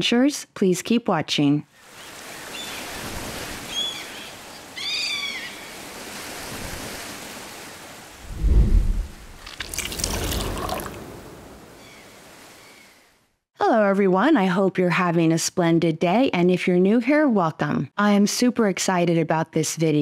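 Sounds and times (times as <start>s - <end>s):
deep thud: 8.3s - 9.4s
splashing pouring liquid: 9.0s - 11.3s.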